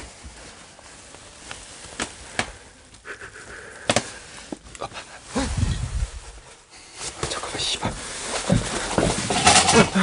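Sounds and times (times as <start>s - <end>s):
objects knocking and clicking: 8.5s - 10.0s.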